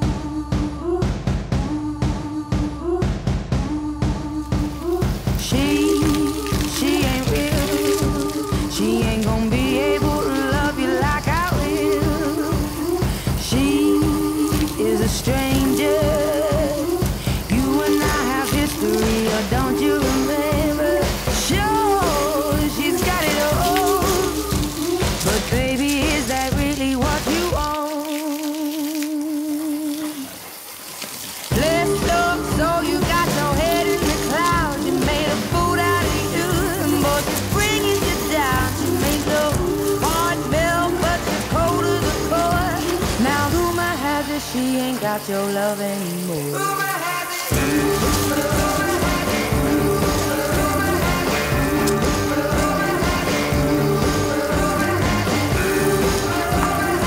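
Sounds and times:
pop song: 0.0 - 30.5, 31.3 - 57.0.

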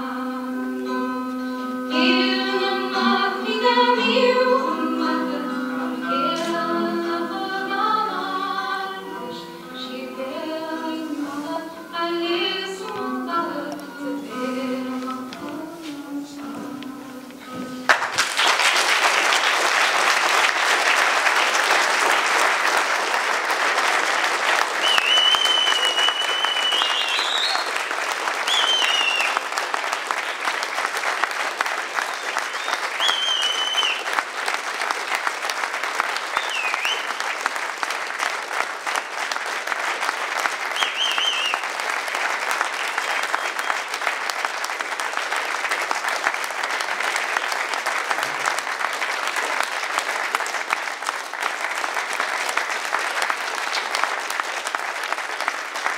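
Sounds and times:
audience applauding: 17.9 - 55.9
high whistles: 24.8 - 27.8, 28.4 - 29.4, 32.1 - 34.1, 36.3 - 37.2, 40.8 - 41.7.

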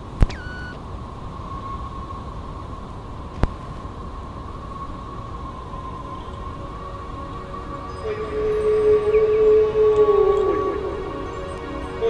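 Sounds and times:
faint constant tone: 0.0 - 12.0
steady hiss and low rumble: 0.0 - 12.0
sharp clicks: 0.2 - 0.8.

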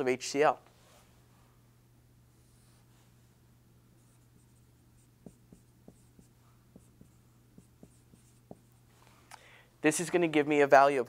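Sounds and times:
marker writing on whiteboard: 4.0 - 8.9.

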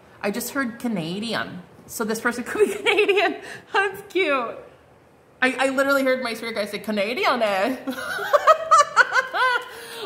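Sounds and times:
woman laughing: 2.6 - 3.5, 7.8 - 10.0.

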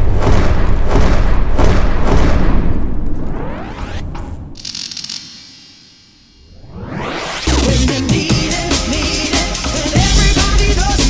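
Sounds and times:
rising sweep: 2.4 - 4.6, 5.9 - 8.0.

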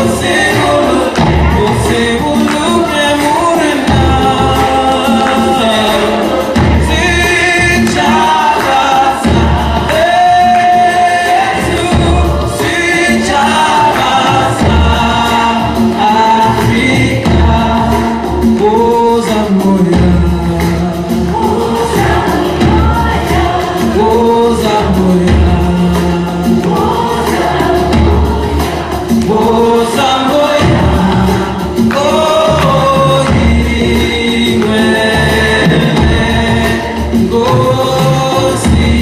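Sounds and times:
bass beat: 0.0 - 39.0
choir singing gospel: 0.0 - 39.0.

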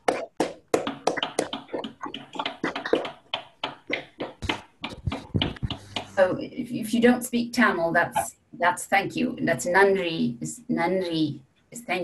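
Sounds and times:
people clapping: 0.0 - 6.1.

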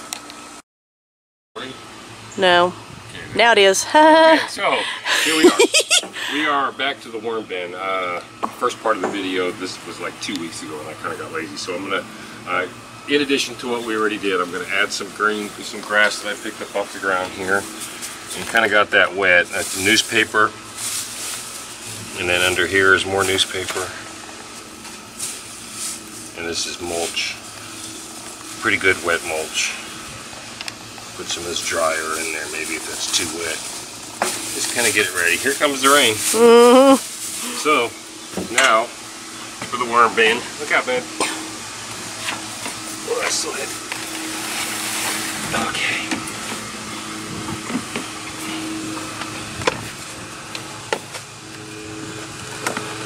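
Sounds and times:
steady low hum: 1.6 - 53.0
shredded paper rustling: 16.0 - 29.5, 31.2 - 36.4
steady hiss: 25.1 - 37.9.

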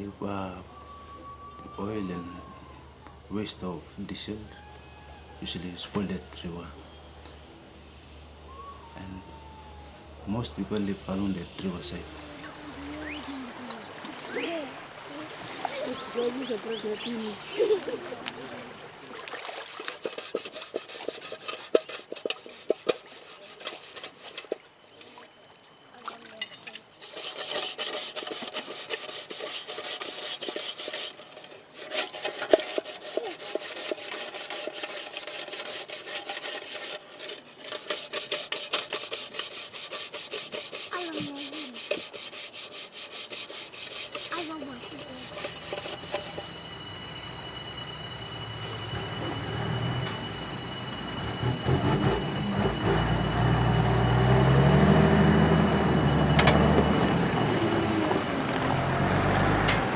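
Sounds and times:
hand scrubbing metal pot: 19.4 - 25.2, 26.6 - 47.5
dump truck diesel engine: 46.9 - 59.9.

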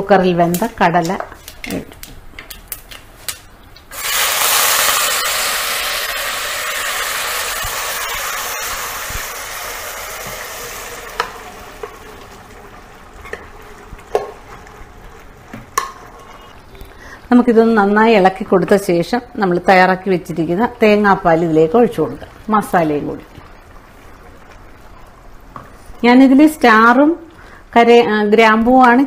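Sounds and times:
loud sizzle in clay pot: 3.8 - 27.6.

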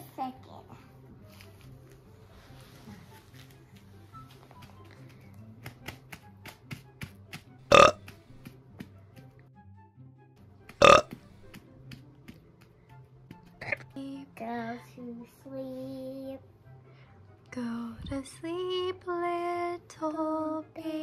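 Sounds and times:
loud short burps: 7.7 - 8.0, 10.8 - 11.2.

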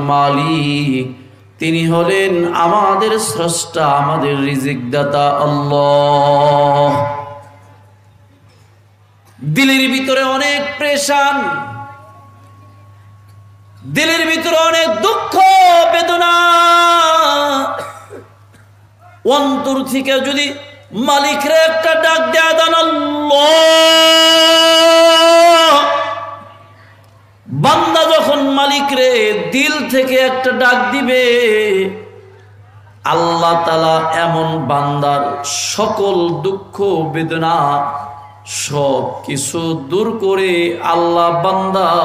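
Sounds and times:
man chanting through a microphone: 0.0 - 7.8, 9.4 - 12.3, 13.8 - 17.9, 19.0 - 42.0
low steady hum: 0.0 - 42.0.

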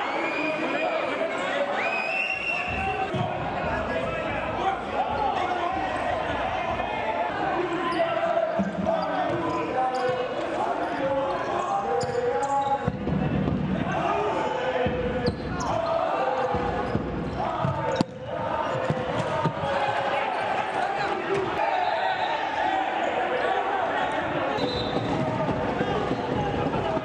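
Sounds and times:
players calling and shouting: 0.0 - 27.0.

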